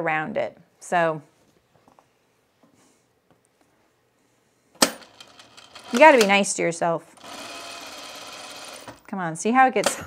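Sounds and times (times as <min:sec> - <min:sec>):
industrial sewing machine stitching: 0:04.9 - 0:06.4, 0:07.2 - 0:09.0.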